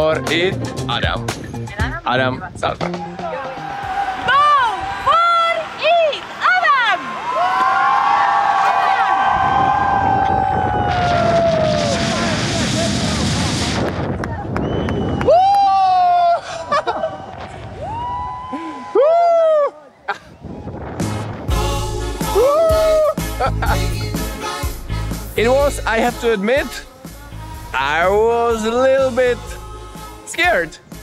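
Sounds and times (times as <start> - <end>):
people shouting and whooping: 3.0 - 13.2, 14.3 - 20.9, 22.3 - 23.2
wind rushing over camera: 9.0 - 18.6, 20.2 - 21.6.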